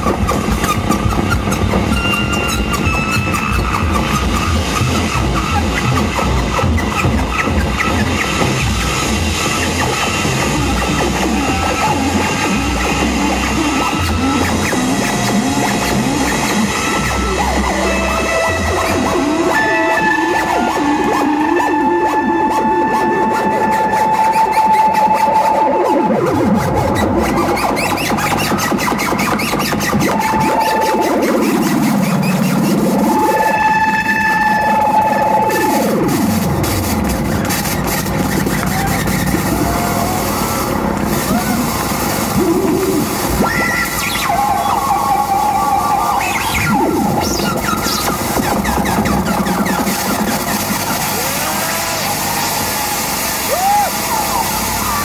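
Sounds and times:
deep swooping synth glides: 0:00.0 - 0:27.9, 0:29.9 - 0:55.0
experimental electronic music: 0:00.0 - 0:55.0.

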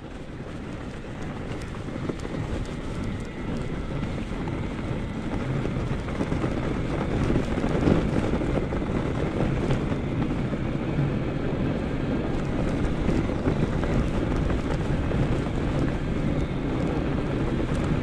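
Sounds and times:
tires rolling over packed snow: 0:00.0 - 0:18.0
wind rumbling on microphone: 0:00.0 - 0:18.0.

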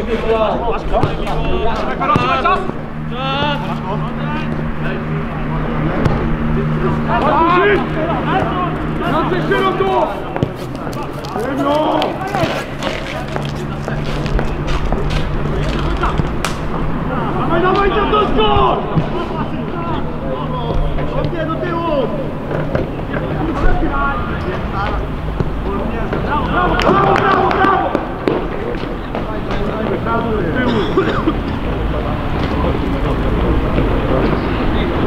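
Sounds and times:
steady low hum: 0:00.0 - 0:26.6
people shouting outdoors: 0:01.4 - 0:05.1, 0:05.7 - 0:13.8, 0:17.0 - 0:22.4, 0:26.3 - 0:28.2.

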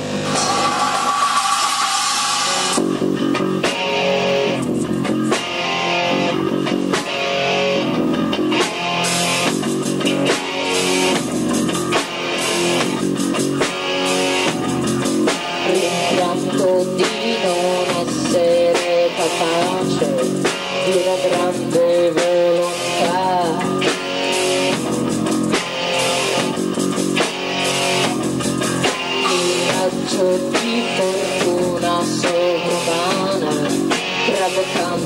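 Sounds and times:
drum kit: 0:00.0 - 0:35.0
electric guitar: 0:00.0 - 0:35.0.

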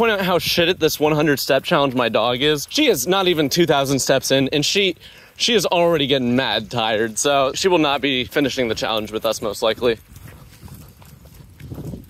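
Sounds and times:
dog breathing: 0:05.0 - 0:05.4.

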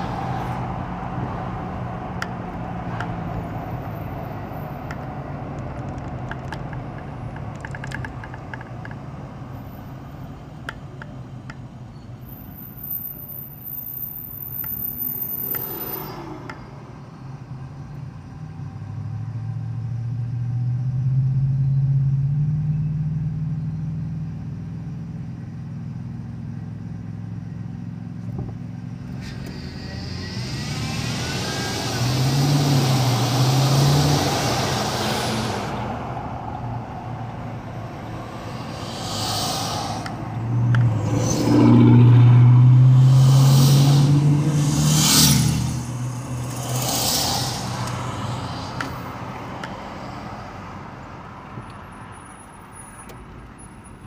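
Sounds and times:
car engine hum: 0:00.0 - 0:54.0
passing traffic rushing: 0:00.0 - 0:54.0.

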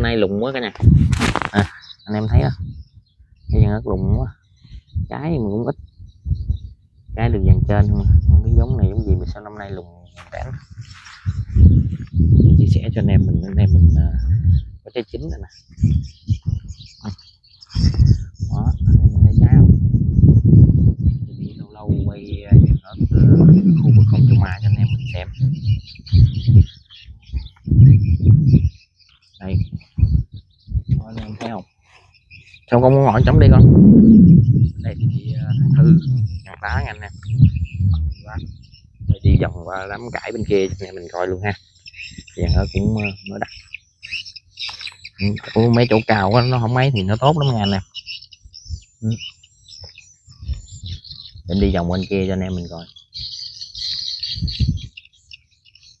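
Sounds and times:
low rumbling bursts: 0:00.0 - 0:17.2, 0:17.8 - 0:28.7, 0:32.7 - 0:41.6
birds chirping: 0:00.0 - 0:56.0
low thuds: 0:07.2 - 0:17.2, 0:17.8 - 0:28.7, 0:29.4 - 0:31.6.

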